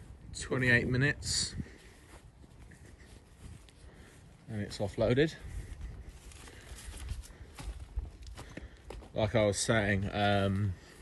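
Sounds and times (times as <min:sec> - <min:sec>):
footsteps on rough ground: 0:00.0 - 0:11.0.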